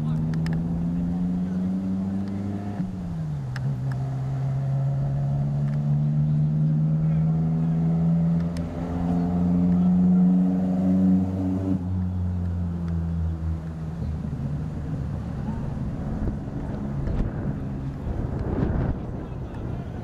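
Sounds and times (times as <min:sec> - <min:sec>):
engine humming: 0:00.0 - 0:20.0.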